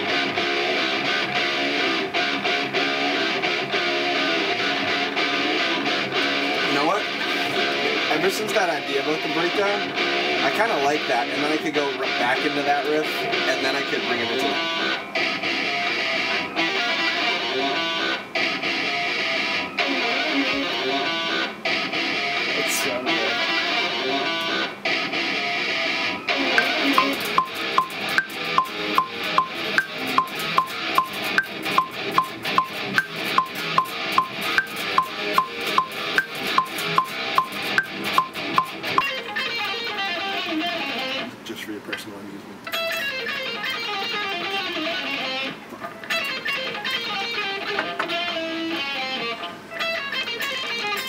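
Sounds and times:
electric guitar metal riffs: 0:00.0 - 0:41.4, 0:42.7 - 0:51.0
metronome clicking: 0:26.6 - 0:39.2.

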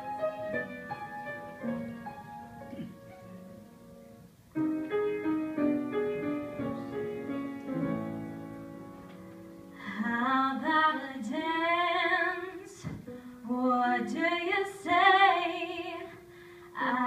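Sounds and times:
soft piano accompaniment: 0:00.0 - 0:17.0
woman singing a ballad: 0:09.8 - 0:17.0.

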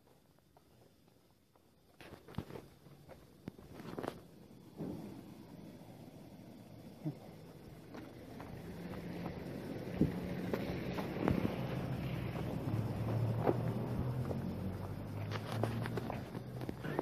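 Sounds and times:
low engine hum: 0:04.3 - 0:17.0.

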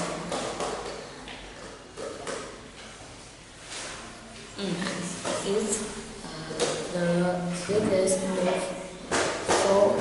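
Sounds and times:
boy speaking quietly: 0:04.4 - 0:09.0.

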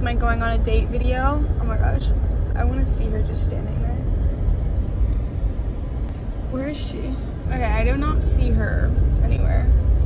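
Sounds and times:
car engine rumble: 0:00.0 - 0:10.0
road noise inside car: 0:00.0 - 0:10.0.

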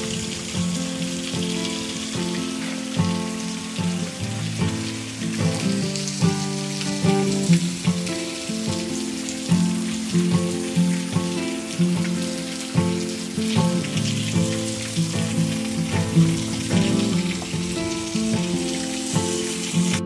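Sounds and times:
background music melody: 0:00.0 - 0:20.0
heavy rain on pavement: 0:00.0 - 0:20.0.

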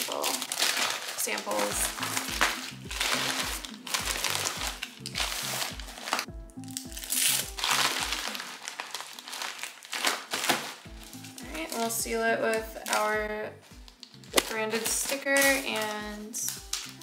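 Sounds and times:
plastic mailer crinkling: 0:00.0 - 0:13.2, 0:13.8 - 0:17.0
background music with beat: 0:01.7 - 0:08.7, 0:10.8 - 0:17.0.

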